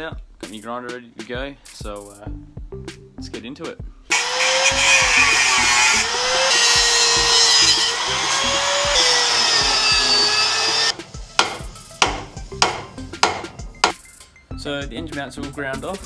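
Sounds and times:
angle grinder cutting metal: 0:04.1 - 0:13.4.

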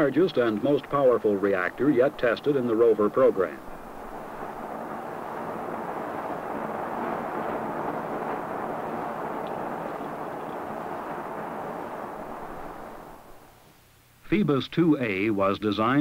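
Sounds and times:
rocket engine exhaust rushing: 0:00.0 - 0:13.9.

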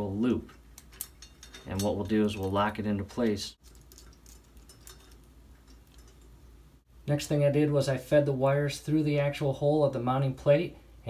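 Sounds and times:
low room hum: 0:00.0 - 0:11.0
metal chain clicking: 0:00.8 - 0:06.4.

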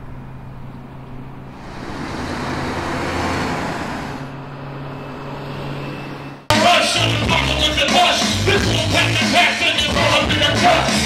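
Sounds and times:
low engine hum: 0:00.0 - 0:06.5
vehicle passing: 0:00.0 - 0:06.5
street traffic: 0:00.0 - 0:11.0
loud hip-hop music: 0:06.5 - 0:11.0.

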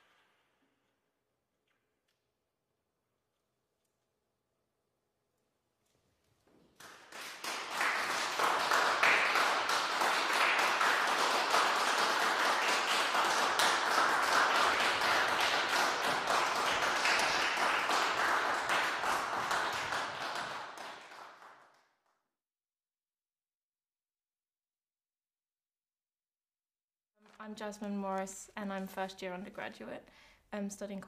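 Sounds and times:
audience applauding: 0:06.8 - 0:21.8.

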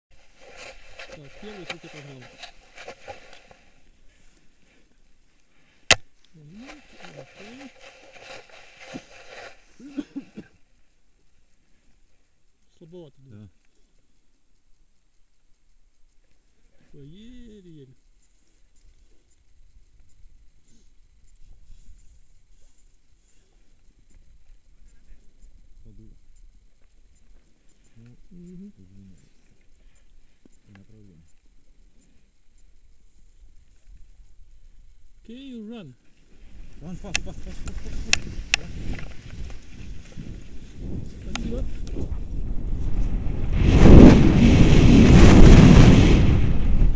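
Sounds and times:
low background noise: 0:00.1 - 0:43.5
sharp click: 0:05.9 - 0:06.3.

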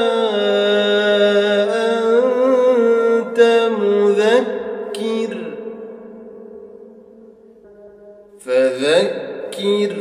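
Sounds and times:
person chanting recitation: 0:00.0 - 0:06.2, 0:08.4 - 0:10.0.

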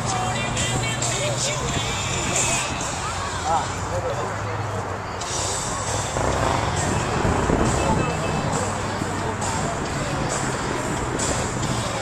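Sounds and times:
background music with beat: 0:00.0 - 0:03.6, 0:05.2 - 0:12.0
low vehicle rumble: 0:00.0 - 0:12.0
people talking: 0:00.2 - 0:12.0.

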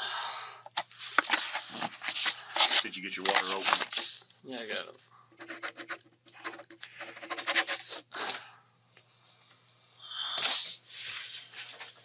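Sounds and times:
paper rustling and scratching: 0:00.8 - 0:04.3, 0:10.4 - 0:12.0.

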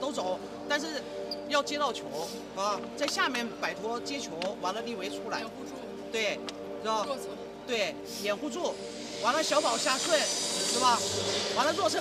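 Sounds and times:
arena noise hiss: 0:00.0 - 0:03.4, 0:05.2 - 0:12.0
man talking: 0:00.0 - 0:12.0.

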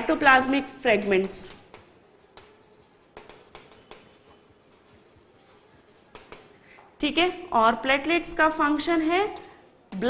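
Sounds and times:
chalk scratching on blackboard: 0:00.9 - 0:06.6.

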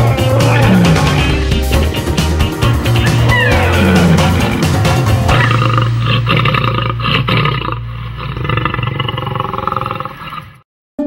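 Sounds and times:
animal roar sound effect: 0:00.0 - 0:01.5, 0:03.0 - 0:10.6.

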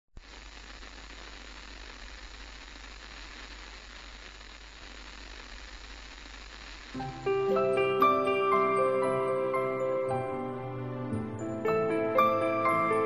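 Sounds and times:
steady hiss: 0:00.1 - 0:10.3.

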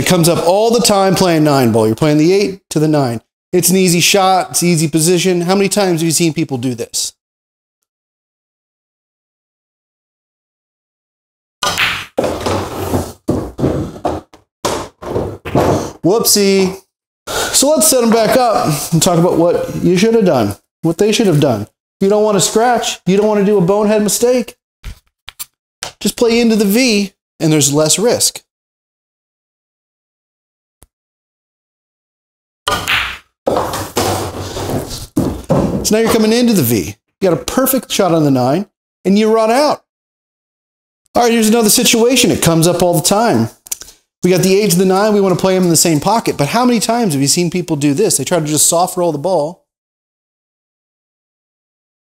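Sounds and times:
pool balls clacking: 0:11.6 - 0:16.0
cue striking ball: 0:11.7 - 0:12.7
balls rolling through ball return: 0:11.7 - 0:16.0.

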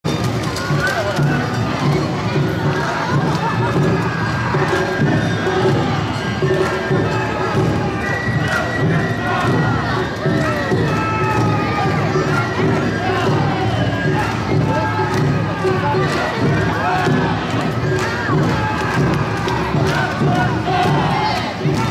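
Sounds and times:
drums: 0:00.0 - 0:21.9
festival crowd: 0:00.0 - 0:21.9
dancers shouting calls: 0:00.7 - 0:21.9
flute: 0:04.0 - 0:21.9.

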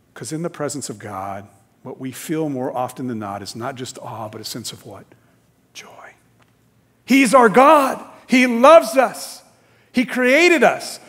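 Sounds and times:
faint whispered word: 0:05.7 - 0:06.3.

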